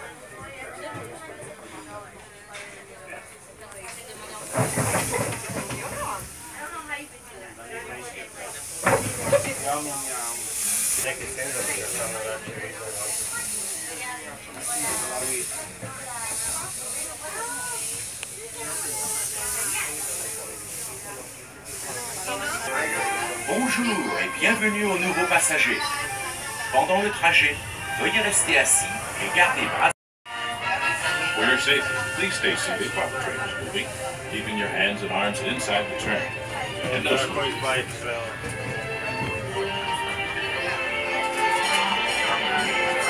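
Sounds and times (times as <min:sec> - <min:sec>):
steam locomotive hissing: 0:03.9 - 0:43.0.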